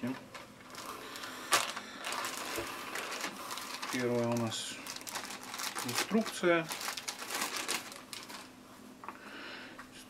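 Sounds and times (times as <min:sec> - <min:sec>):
plastic bag crinkling: 0:00.0 - 0:08.6.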